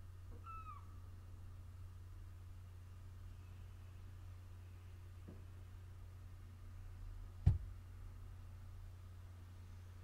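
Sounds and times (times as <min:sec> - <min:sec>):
faint low hum: 0:00.0 - 0:10.0
high animal call: 0:00.3 - 0:01.0.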